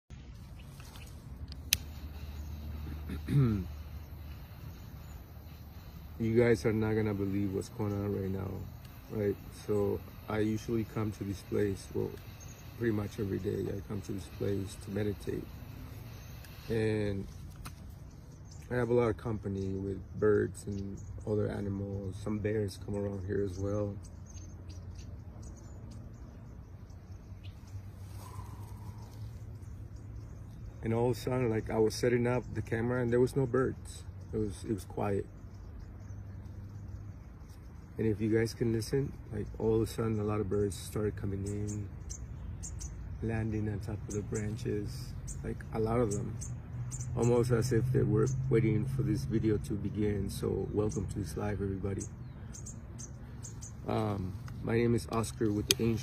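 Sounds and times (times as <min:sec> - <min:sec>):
birds chirping: 0:00.0 - 0:56.0
steady low hum: 0:00.1 - 0:56.0
sharp click: 0:01.4 - 0:02.0
faint rustles and ticks: 0:52.0 - 0:56.0.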